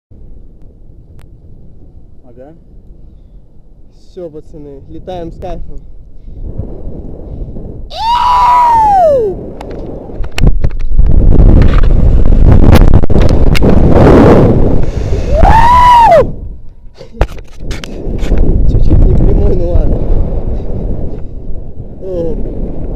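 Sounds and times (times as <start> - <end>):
wind rushing over microphone: 0.1 - 22.9
person yelling: 7.9 - 9.4, 15.3 - 16.3.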